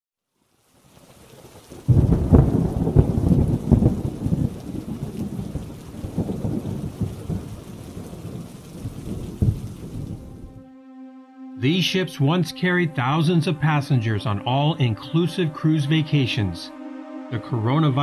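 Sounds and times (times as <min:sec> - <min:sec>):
rain hiss: 0:00.3 - 0:10.6
thunder rumbling: 0:01.2 - 0:10.6.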